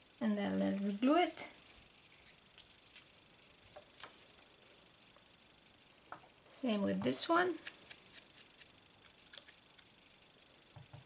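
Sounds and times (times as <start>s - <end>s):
paper rustling: 2.1s - 4.5s
small clicks of paper pieces: 7.6s - 9.9s.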